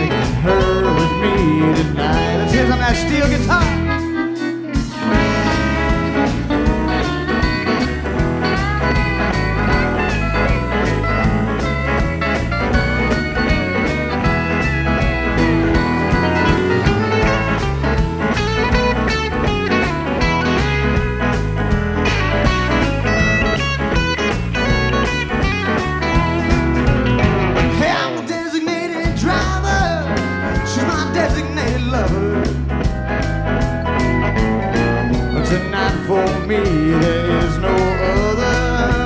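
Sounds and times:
country band playing: 0.0 - 39.0
pedal steel guitar sliding notes: 3.6 - 27.8, 32.8 - 37.4.

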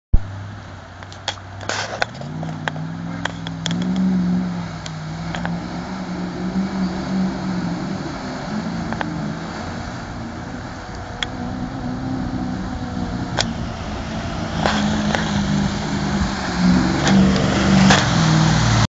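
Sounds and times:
off-road vehicle engine revving: 0.2 - 18.9
river rushing: 0.2 - 18.9.

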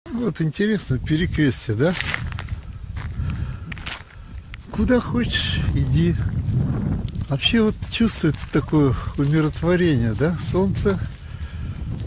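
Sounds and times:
footsteps crunching on gravel: 1.2 - 12.0.

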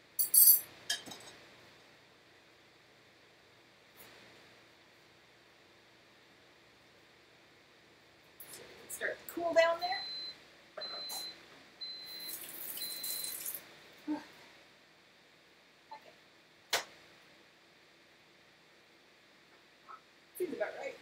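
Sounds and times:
appliance beeping: 9.9 - 13.6.

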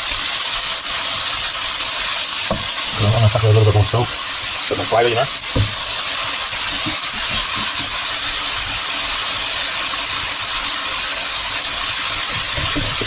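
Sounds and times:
food sizzling in oil: 0.0 - 13.0
spatula stirring in pan: 2.1 - 8.8, 10.2 - 13.0.

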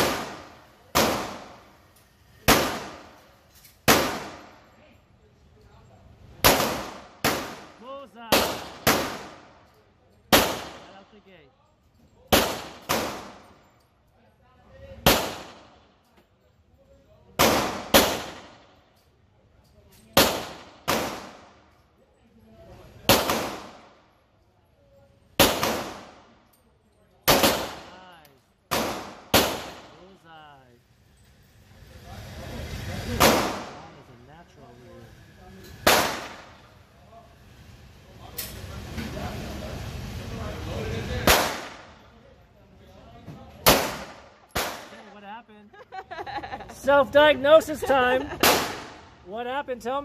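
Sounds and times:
handgun shots: 12.3 - 13.5, 20.2 - 21.4, 23.1 - 23.8, 25.4 - 26.2, 28.7 - 29.9, 33.2 - 33.8, 35.8 - 36.4, 41.2 - 42.0, 43.6 - 45.0, 48.4 - 49.0.

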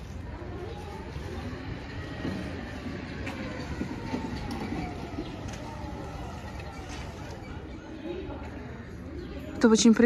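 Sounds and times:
bicycle rolling over rough pavement: 0.0 - 8.6.

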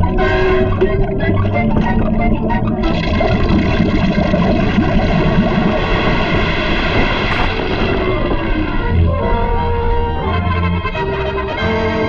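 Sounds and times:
cartoon molten metal rumbling: 4.2 - 9.4.

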